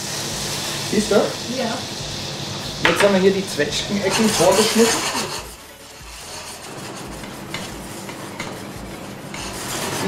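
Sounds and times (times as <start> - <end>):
kitchen background noise: 0.0 - 10.0
utensil scraping porcelain plate: 4.0 - 10.0.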